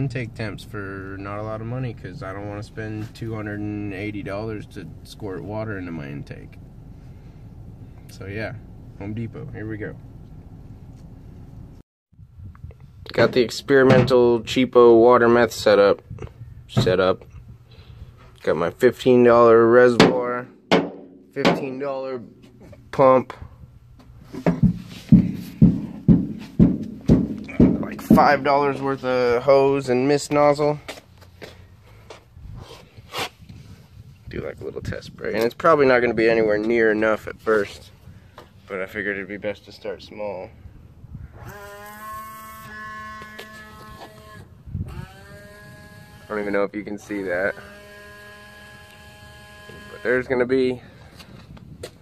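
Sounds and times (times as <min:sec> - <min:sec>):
footsteps thudding: 0:20.0 - 0:22.9, 0:24.0 - 0:28.8
electric pump humming: 0:41.4 - 0:46.7, 0:47.3 - 0:50.2.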